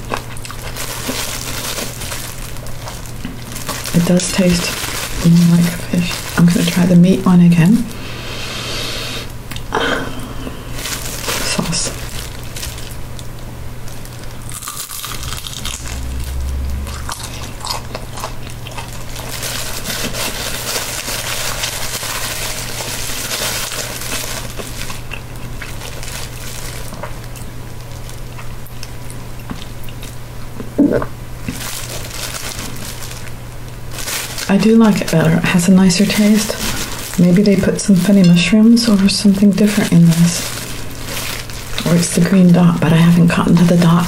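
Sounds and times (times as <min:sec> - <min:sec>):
crunching and chewing: 0:00.0 - 0:06.7, 0:10.7 - 0:30.5, 0:31.4 - 0:34.5, 0:39.8 - 0:42.5.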